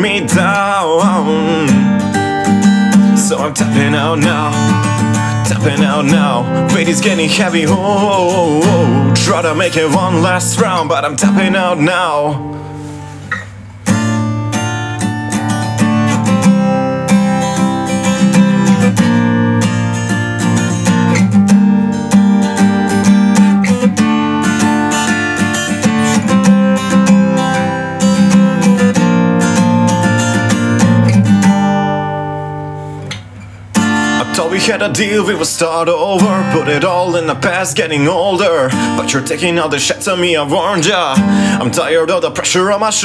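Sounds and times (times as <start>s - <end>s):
acoustic guitar strumming chords: 0.0s - 43.0s.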